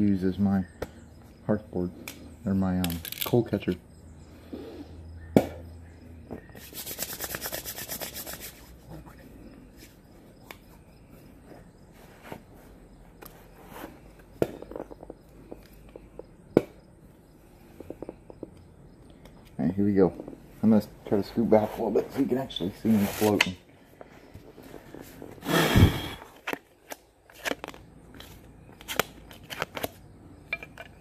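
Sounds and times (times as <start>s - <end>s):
rapid rasping scrape: 6.6s - 8.9s.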